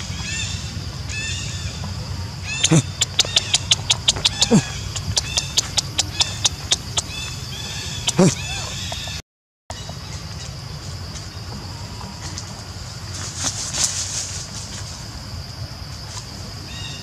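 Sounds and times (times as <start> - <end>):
monkeys calling: 2.6 - 9.2.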